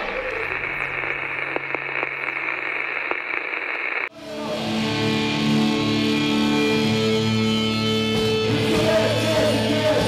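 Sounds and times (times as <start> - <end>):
faint crackles: 0.0 - 4.1
radio static hiss: 0.0 - 5.0.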